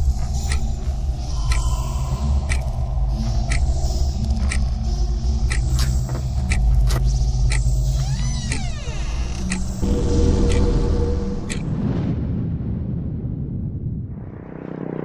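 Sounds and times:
sharp ticks: 0.0 - 11.7
deep rumbling drone: 0.0 - 15.0.

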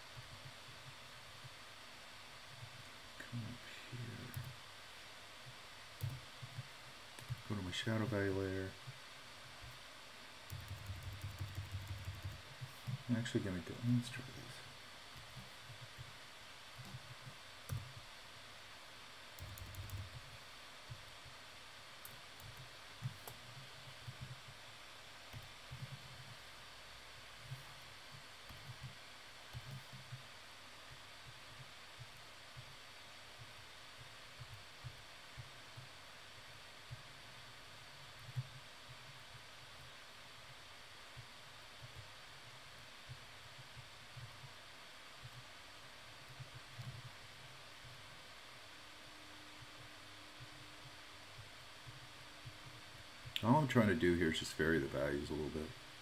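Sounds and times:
faint steady hiss: 0.0 - 56.0
keyboard clicks: 10.5 - 13.0, 19.4 - 20.2.

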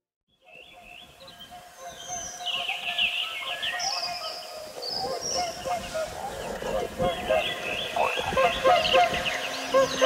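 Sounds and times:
birds chirping and honking: 0.4 - 10.0.

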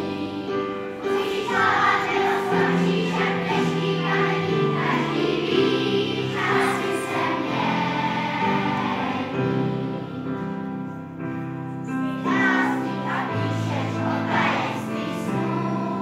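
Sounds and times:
children's choir singing: 0.0 - 16.0.

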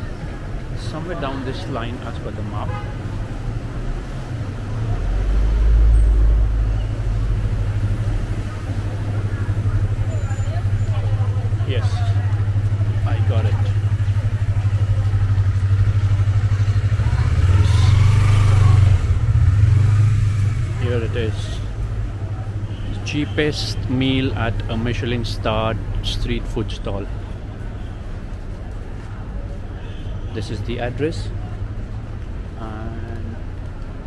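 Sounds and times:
faint voices: 0.0 - 19.3
traffic hum: 0.0 - 34.0
vehicle passing: 3.1 - 22.5.

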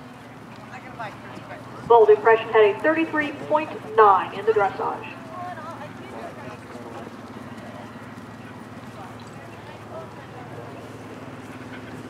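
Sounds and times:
steady low hum: 1.8 - 5.2.

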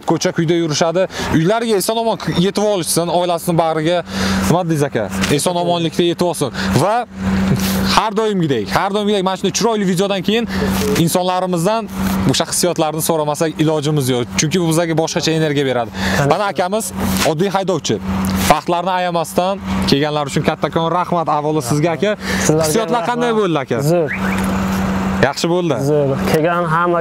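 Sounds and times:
man speaking: 0.0 - 24.2, 25.1 - 27.0
man talking: 0.0 - 24.2, 25.1 - 27.0
car running: 0.0 - 27.0
steady low hum: 0.1 - 27.0.

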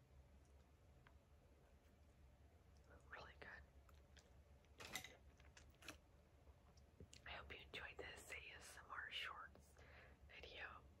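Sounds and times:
woman whispering: 2.9 - 3.7, 7.2 - 11.0.

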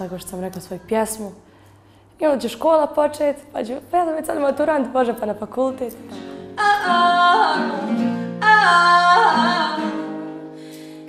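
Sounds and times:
guitar accompaniment: 5.1 - 11.0
woman singing pop song: 6.4 - 10.3.

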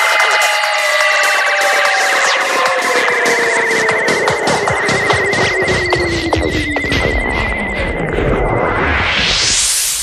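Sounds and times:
rising noise sweep: 1.8 - 10.0
high wavering synth tone: 2.0 - 9.6
low throbbing electronic rumble: 2.3 - 10.0.

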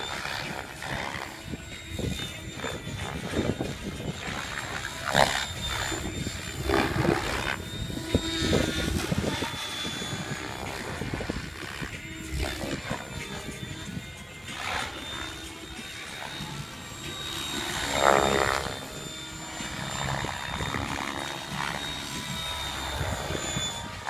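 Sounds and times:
rc helicopter rotor and motor whine: 0.0 - 24.0.

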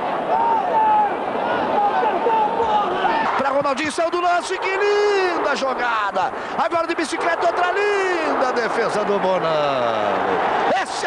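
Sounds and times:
stadium crowd noise: 0.0 - 11.0
man talking: 1.8 - 11.0.

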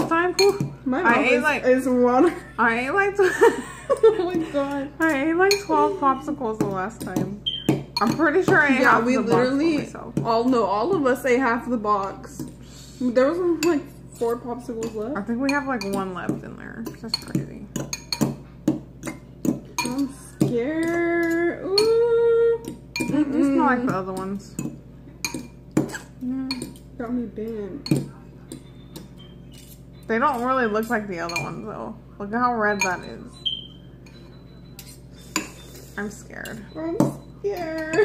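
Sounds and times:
metal forks clinking against bowls: 0.0 - 1.4, 3.9 - 12.6, 13.2 - 18.4, 19.0 - 22.0, 22.6 - 31.8, 32.6 - 38.0.

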